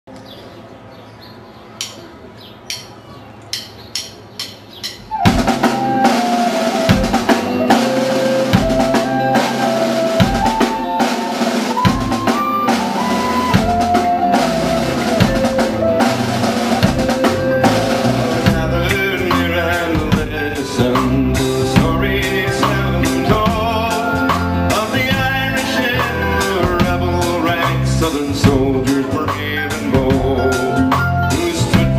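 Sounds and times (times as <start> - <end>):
drum stick clicks: 1.8 - 2.0, 2.7 - 5.2
live band playing instrumental: 4.2 - 31.9.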